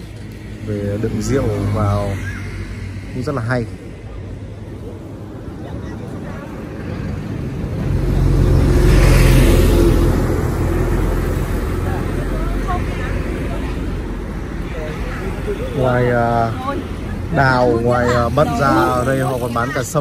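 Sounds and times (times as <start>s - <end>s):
heavy truck passing: 0.0s - 20.0s.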